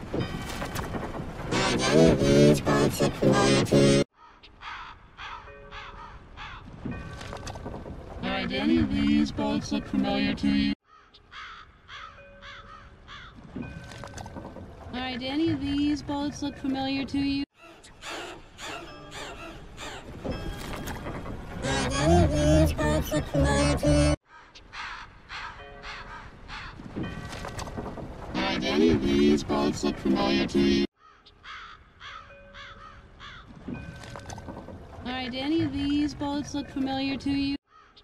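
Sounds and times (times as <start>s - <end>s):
glitch effects: 0.9s - 4.1s, 21.5s - 24.2s, 28.3s - 30.9s
voice: 1.5s - 4.1s, 8.2s - 10.8s, 14.9s - 17.5s, 21.6s - 24.2s, 28.4s - 30.9s, 35.0s - 37.6s
harsh bird squawks: 4.2s - 6.6s, 10.9s - 13.3s, 31.0s - 33.5s
cartoon seagulls squawking: 18.0s - 20.7s, 21.6s - 26.8s.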